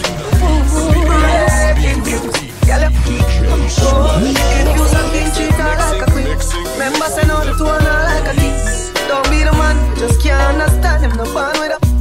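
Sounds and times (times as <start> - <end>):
dancehall music: 0.0 - 9.4.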